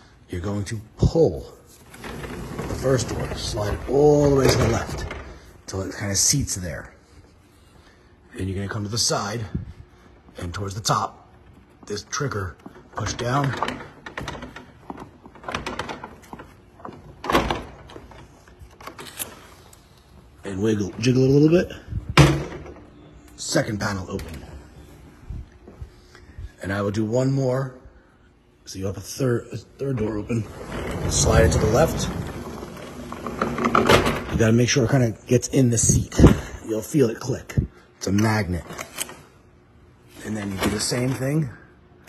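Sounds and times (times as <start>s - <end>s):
sliding door noise: 1.8s - 5.6s, 29.8s - 34.6s.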